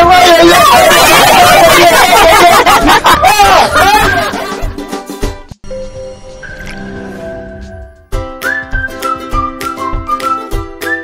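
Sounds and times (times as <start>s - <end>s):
people talking over each other: 0.0s - 4.5s
laughter: 1.0s - 4.8s.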